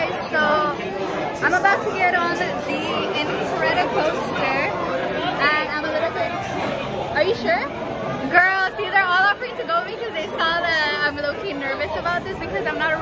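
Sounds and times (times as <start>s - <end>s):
people talking: 0.0s - 13.0s.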